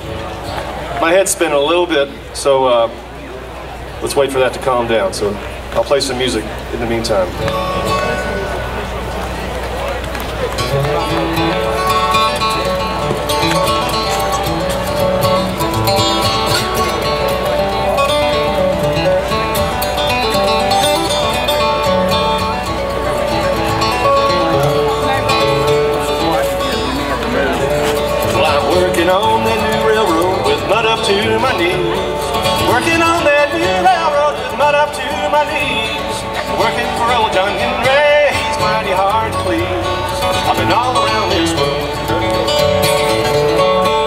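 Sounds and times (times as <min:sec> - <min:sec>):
acoustic guitar: 0:00.0 - 0:44.0
person singing: 0:27.6 - 0:42.1.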